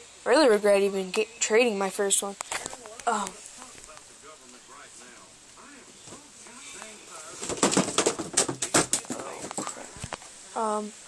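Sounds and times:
plastic toys clicking and knocking: 7.4 - 9.8.

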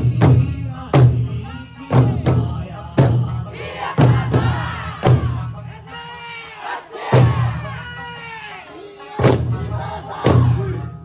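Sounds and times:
large drums booming: 0.0 - 5.5
group shouting calls: 6.0 - 8.0.

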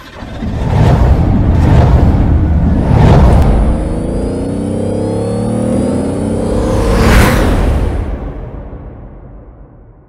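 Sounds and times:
deep rumbling sound effect: 0.0 - 4.4.

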